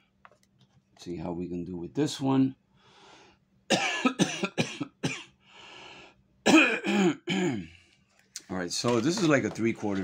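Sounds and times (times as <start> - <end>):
man coughing: 3.7 - 5.4, 6.4 - 7.8.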